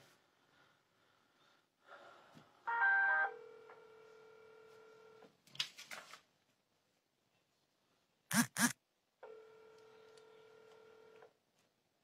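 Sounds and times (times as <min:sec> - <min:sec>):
phone ringing tone: 0:02.7 - 0:05.2.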